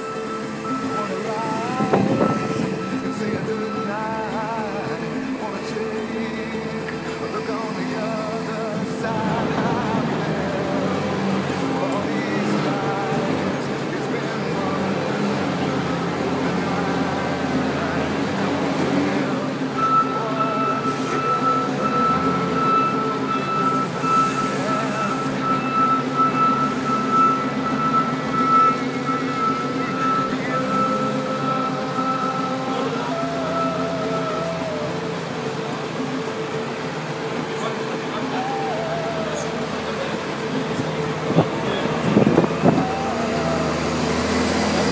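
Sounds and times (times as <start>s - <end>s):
diesel engine under load: 0.0s - 44.9s.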